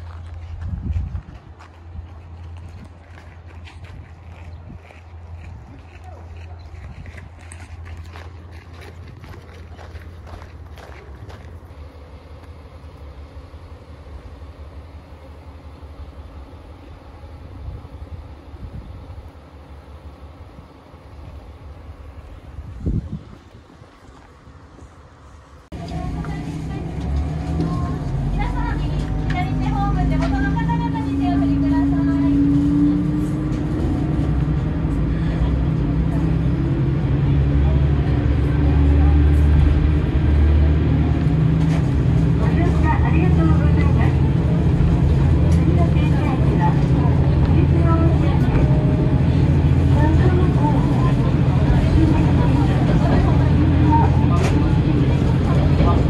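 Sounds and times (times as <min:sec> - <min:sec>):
diesel railcar engine running: 0:00.0 - 0:56.0
voices talking: 0:25.7 - 0:56.0.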